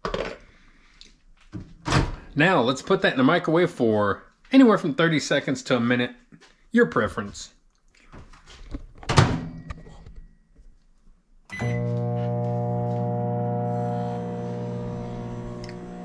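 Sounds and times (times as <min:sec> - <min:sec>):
microwave beep: 0:11.5 - 0:14.2
microwave humming: 0:11.5 - 0:16.0.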